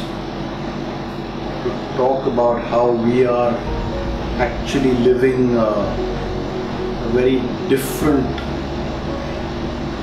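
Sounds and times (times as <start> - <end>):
droning hum with hiss: 0.0 - 10.0
man speaking: 2.2 - 6.2.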